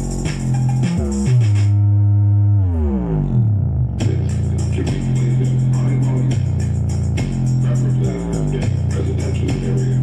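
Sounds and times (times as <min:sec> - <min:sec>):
deep bass note sliding down: 0:00.0 - 0:10.0.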